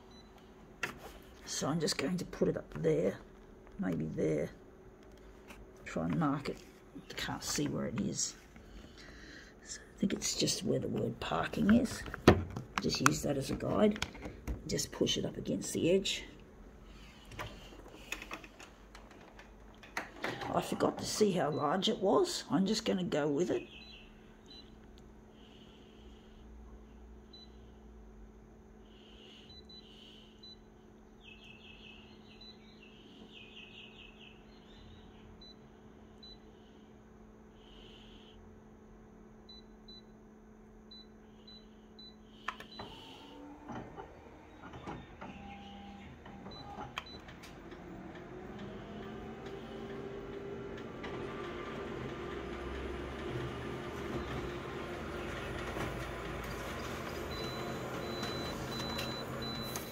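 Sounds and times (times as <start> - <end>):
copier idle hum: 0.0 - 59.9
copier motor whine and running: 40.9 - 59.9
copier clicks: 43.6 - 59.9.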